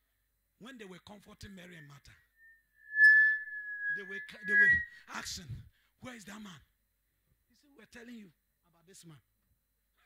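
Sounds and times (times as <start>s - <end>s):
microphone feedback ringing tone: 2.4s - 5.3s.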